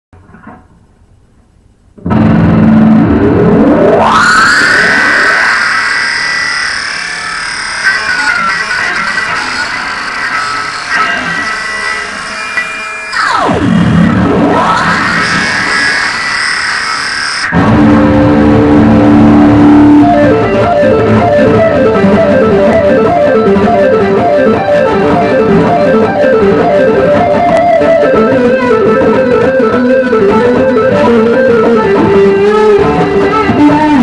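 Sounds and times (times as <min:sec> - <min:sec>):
distorted electric guitar: 0:01.9 - 0:34.0.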